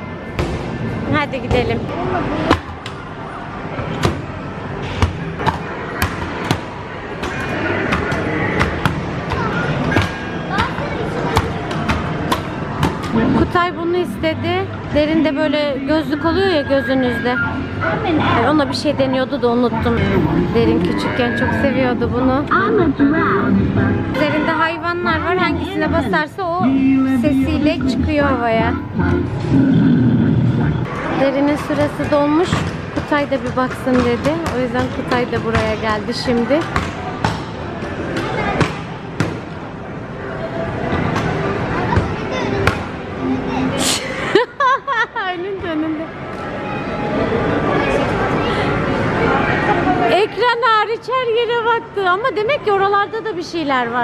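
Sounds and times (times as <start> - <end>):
arcade din: 25.1 - 30.9
electronic game music: 25.2 - 30.9.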